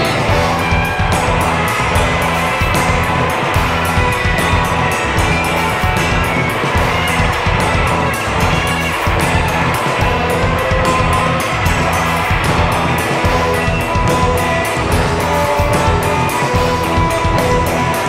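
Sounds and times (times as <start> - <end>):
bass guitar: 0.0 - 18.0
drum beat: 0.0 - 18.0
electric guitar: 0.0 - 18.0
keyboard: 0.0 - 18.0.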